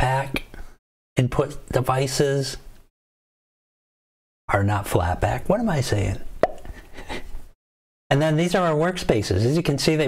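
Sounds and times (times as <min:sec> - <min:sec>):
mouth pop: 0:06.4 - 0:06.8.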